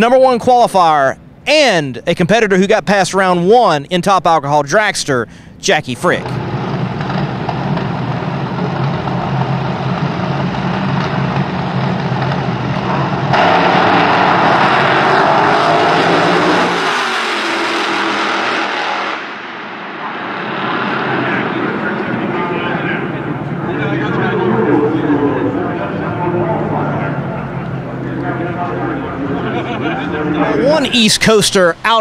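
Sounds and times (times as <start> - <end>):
dragster engines roaring: 5.9 - 32.0.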